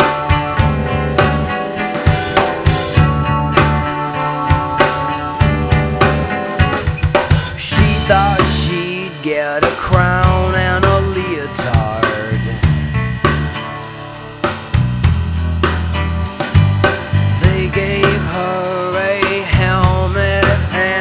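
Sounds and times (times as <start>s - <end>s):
drum kit beat: 0.0s - 21.0s
steady bass line: 0.0s - 21.0s.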